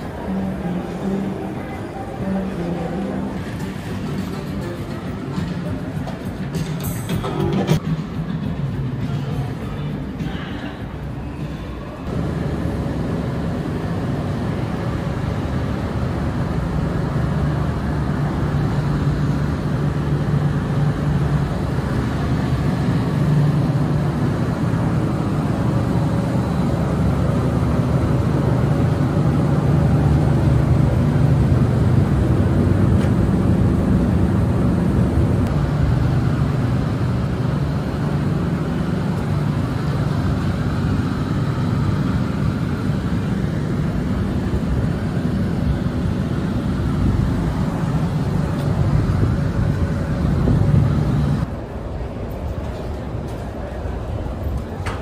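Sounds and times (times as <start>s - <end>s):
low rumble of city noise: 0.0s - 55.0s.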